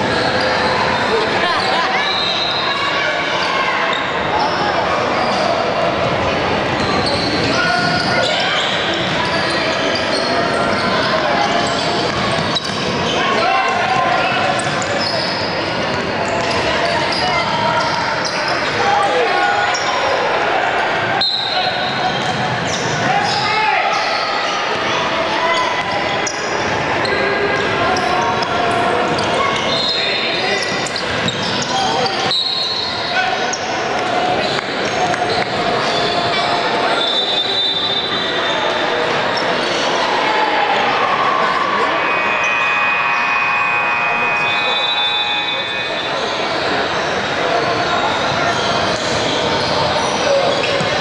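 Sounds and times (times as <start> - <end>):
sneakers squeaking: 0.0 - 20.0, 21.2 - 40.0, 44.4 - 51.0
people calling out and chattering: 0.0 - 51.0
basketball bouncing on court: 11.9 - 13.1.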